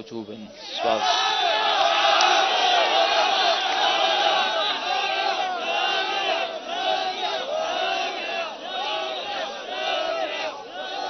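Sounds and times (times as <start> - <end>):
crowd of men chanting: 0.5 - 11.0.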